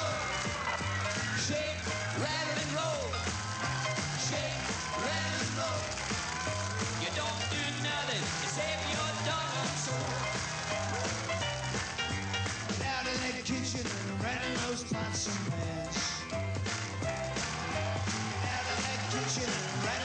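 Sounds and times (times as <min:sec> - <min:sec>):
rock and roll band music: 0:00.0 - 0:20.0.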